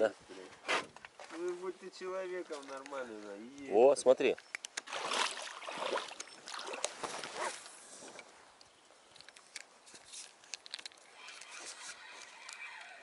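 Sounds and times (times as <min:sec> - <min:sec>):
water splashing around boat: 0:04.8 - 0:07.6.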